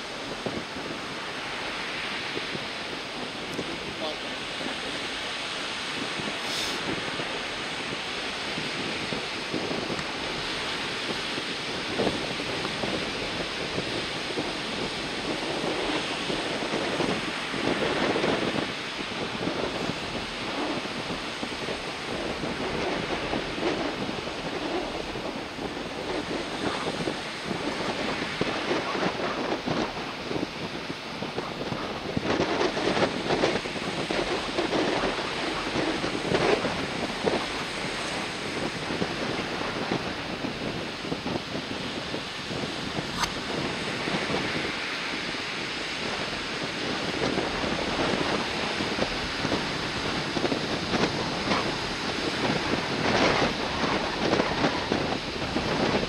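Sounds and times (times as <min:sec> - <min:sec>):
waves breaking in surf: 0:00.0 - 0:56.0
wind buffeting microphone: 0:00.0 - 0:56.0.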